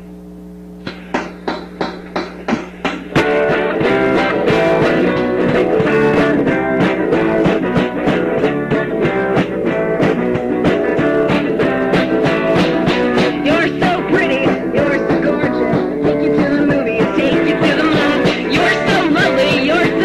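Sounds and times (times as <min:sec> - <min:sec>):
steady hum: 0:00.0 - 0:07.4
guitar strumming: 0:00.8 - 0:20.0
rock band with drums: 0:00.8 - 0:20.0.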